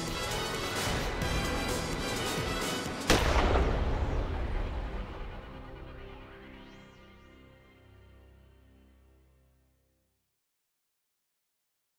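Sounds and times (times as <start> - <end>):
rifle shot with echo: 3.1 - 4.5.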